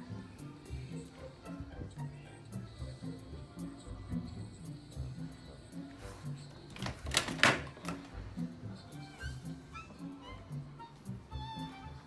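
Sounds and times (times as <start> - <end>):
background music with low bass: 0.0 - 12.0
plastic toys clattering: 6.7 - 8.0.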